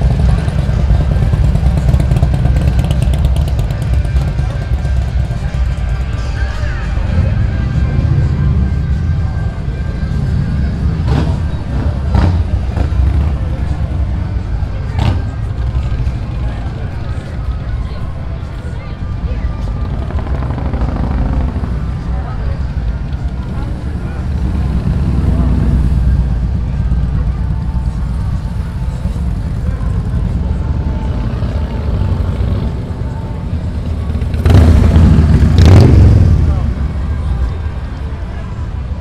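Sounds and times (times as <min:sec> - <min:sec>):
motorcycle engines rumbling: 0:00.0 - 0:39.0
motorcycle passing close: 0:34.2 - 0:36.7.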